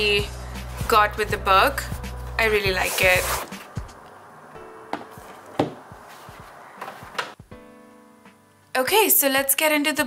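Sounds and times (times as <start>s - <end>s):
quiet background music: 0.0s - 10.0s
book knocking on table: 4.9s - 5.9s.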